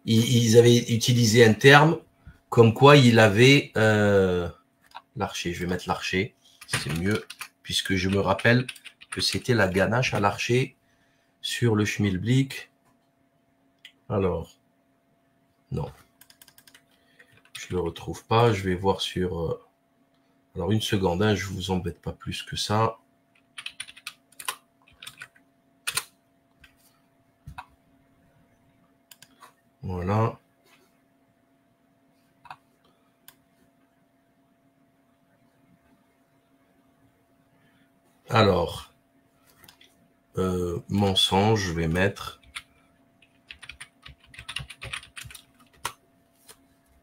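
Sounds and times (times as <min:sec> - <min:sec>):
computer keyboard typing: 0:06.5 - 0:09.5, 0:16.1 - 0:17.7, 0:23.3 - 0:26.8, 0:29.1 - 0:29.4, 0:42.4 - 0:46.0.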